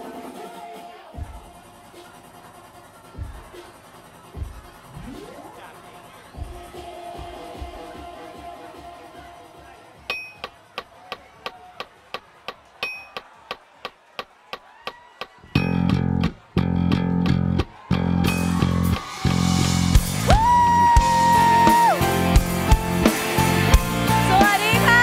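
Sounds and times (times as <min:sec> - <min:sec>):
bass guitar stop-start hits: 0:15.6 - 0:24.4
band playing: 0:15.6 - 0:25.0.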